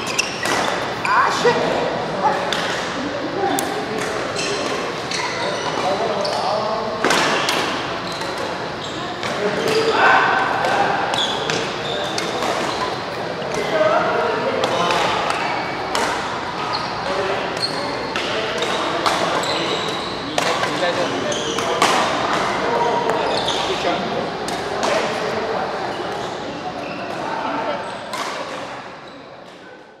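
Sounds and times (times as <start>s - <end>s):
shoes squeaking on court: 0.0s - 1.4s, 4.2s - 6.6s, 11.1s - 13.7s, 16.6s - 21.8s, 22.8s - 24.0s
rackets hitting shuttlecock: 21.6s - 23.2s.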